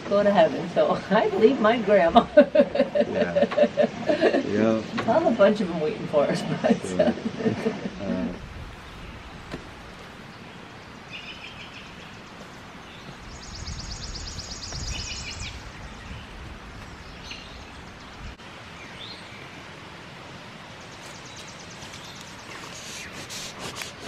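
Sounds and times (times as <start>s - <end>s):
birds chirping and trilling: 0.0s - 19.6s, 20.7s - 24.0s
steady background hiss: 0.0s - 24.0s.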